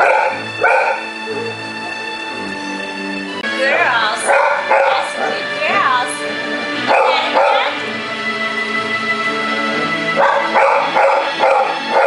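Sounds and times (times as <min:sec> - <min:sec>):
dog barking: 0:00.0 - 0:01.1, 0:04.2 - 0:05.4, 0:06.9 - 0:07.8, 0:10.2 - 0:12.0
background music: 0:00.0 - 0:12.0.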